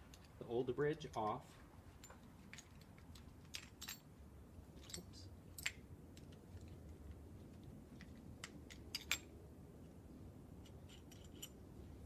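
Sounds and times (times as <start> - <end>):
faint metal hardware clicks: 10.6 - 11.6.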